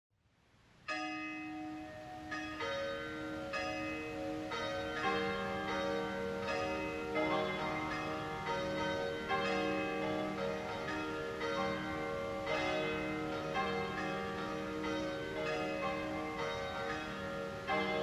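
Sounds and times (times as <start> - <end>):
church bells ringing: 0.9 - 18.0.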